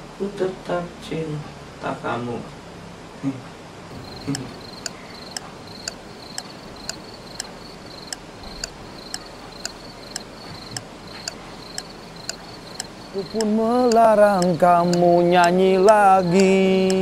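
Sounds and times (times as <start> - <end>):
cricket chirping: 3.9 - 17.0.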